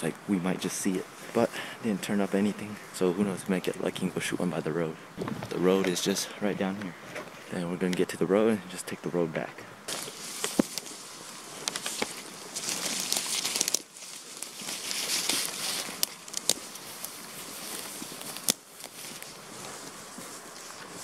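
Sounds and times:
boots crunching through dry grass: 0:09.9 - 0:21.0
clothing brushing through grass: 0:09.9 - 0:21.0
twigs cracking: 0:09.9 - 0:21.0.

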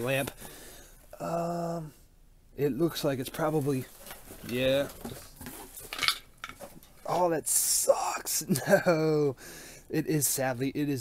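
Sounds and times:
plastic wrap rustling: 0:03.3 - 0:07.1
clinks and knocks of lamp: 0:05.9 - 0:06.8.

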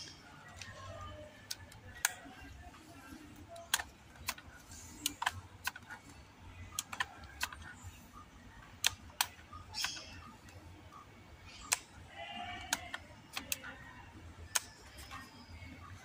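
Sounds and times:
air rifle mechanical clicks: 0:03.4 - 0:06.1, 0:06.7 - 0:07.6, 0:14.5 - 0:15.3.

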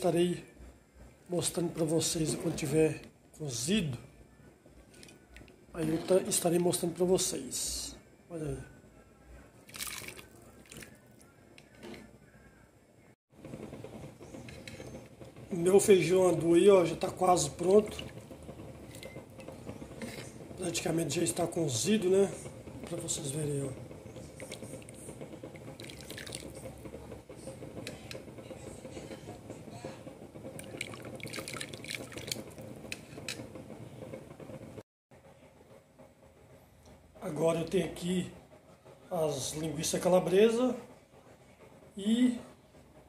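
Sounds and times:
broth splashing into a pot: 0:09.7 - 0:11.0, 0:25.7 - 0:26.6, 0:30.6 - 0:32.4.

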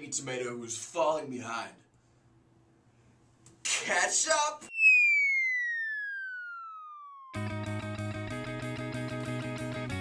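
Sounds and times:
descending whistle sound effect: 0:04.7 - 0:07.5.

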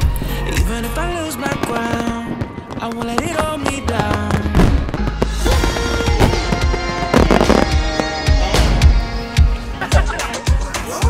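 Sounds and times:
background music: 0:00.0 - 0:11.0
fireworks bursting and crackling: 0:00.0 - 0:11.0.

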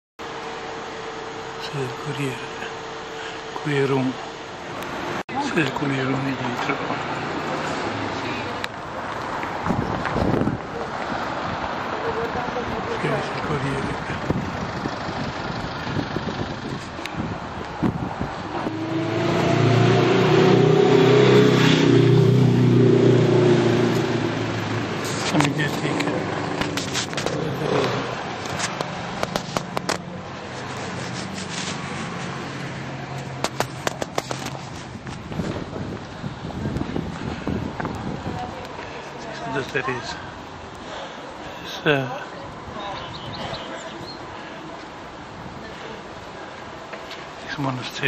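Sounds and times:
city traffic hum: 0:00.2 - 0:48.0
street noise: 0:00.2 - 0:48.0
wind buffeting microphone: 0:09.4 - 0:11.8, 0:13.8 - 0:18.8, 0:33.4 - 0:38.8
camera handling clicks and scrapes: 0:26.6 - 0:32.4, 0:33.4 - 0:35.5.

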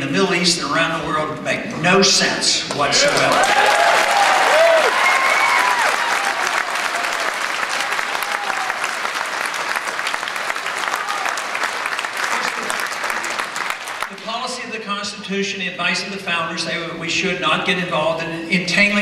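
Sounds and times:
audience applauding: 0:02.7 - 0:14.3
audience cheering and whooping: 0:03.1 - 0:14.1.

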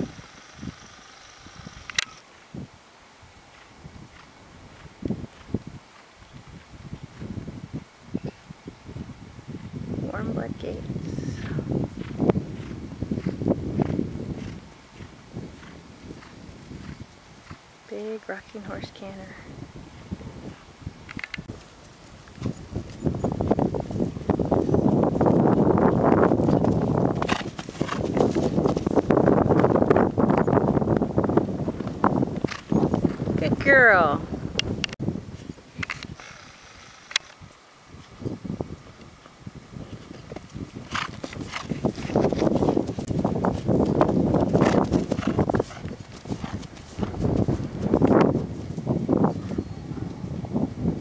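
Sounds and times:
horse hoofbeats cantering on dirt: 0:03.5 - 0:07.5, 0:11.9 - 0:17.7, 0:21.5 - 0:33.6, 0:39.8 - 0:49.7.

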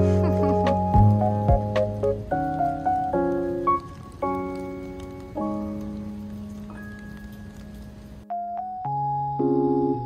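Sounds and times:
rain on wet paving: 0:00.0 - 0:08.7
slow keyboard music: 0:00.0 - 0:10.0.

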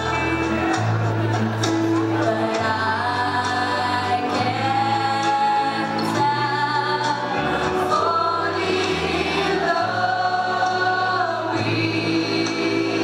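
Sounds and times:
instrumental accompaniment: 0:00.0 - 0:13.0
group of young voices singing: 0:02.1 - 0:13.0.

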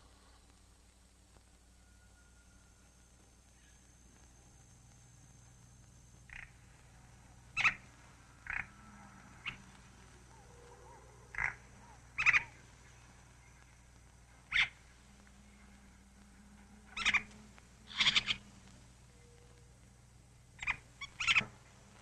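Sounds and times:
faint steady hum: 0:00.0 - 0:22.0
short sharp animal calls: 0:16.9 - 0:18.5.

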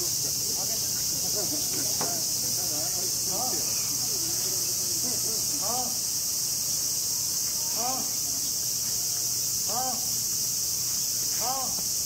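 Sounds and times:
cicadas droning: 0:00.0 - 0:12.0.

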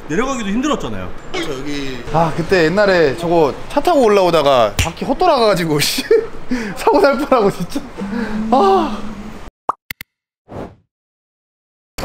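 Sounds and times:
street sound: 0:00.0 - 0:09.5.

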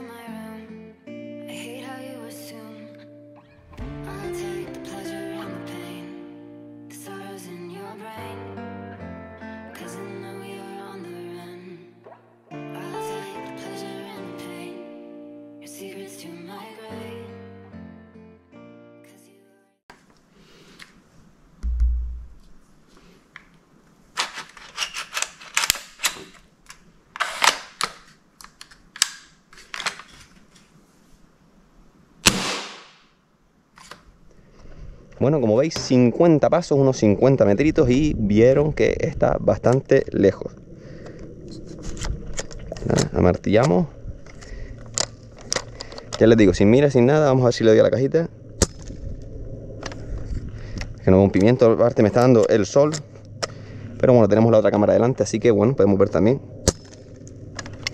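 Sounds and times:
low outdoor rumble: 0:34.1 - 0:57.9.

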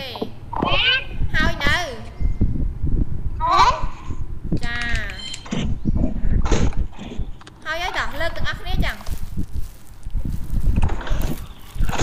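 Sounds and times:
child calling over video call: 0:00.0 - 0:02.1, 0:03.4 - 0:05.3
low rumbling microphone noise: 0:00.0 - 0:12.0.

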